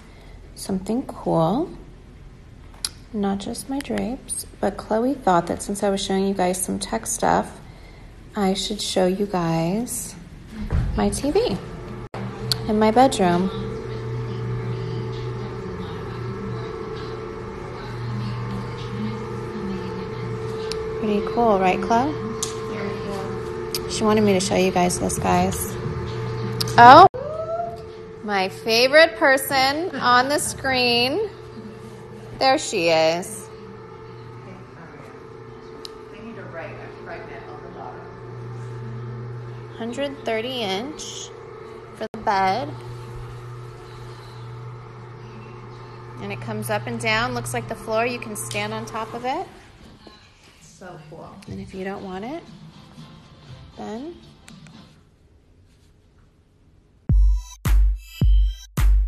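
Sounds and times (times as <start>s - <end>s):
electric motor humming: 10.5s - 50.0s.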